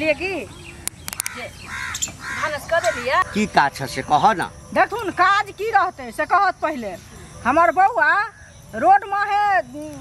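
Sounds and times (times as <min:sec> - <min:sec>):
voices talking: 0:00.0 - 0:10.0
crow cawing: 0:01.1 - 0:03.7.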